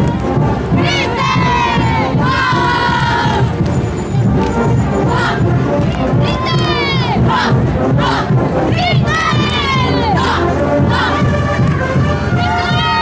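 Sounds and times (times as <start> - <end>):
crowd noise: 0.0 - 13.0
women shouting high cries: 12.4 - 13.0.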